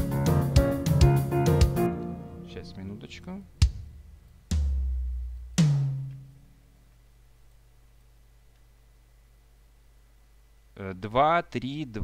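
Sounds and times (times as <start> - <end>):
deep booming kick drum: 3.6 - 6.1
higher drum hit ringing: 3.6 - 6.4.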